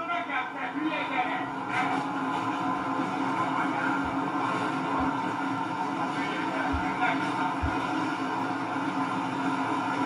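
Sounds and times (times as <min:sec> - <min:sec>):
tram running hum: 0:01.4 - 0:10.0.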